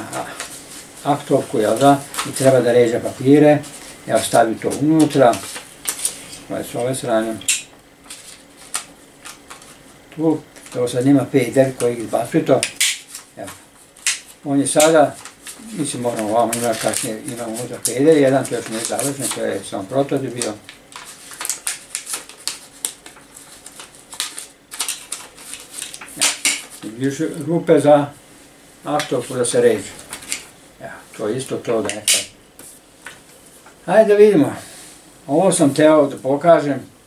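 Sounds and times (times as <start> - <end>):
paper rustling: 0.2 - 7.3, 8.0 - 12.2, 13.0 - 27.5
paper clicks: 7.4 - 10.8, 12.6 - 27.2.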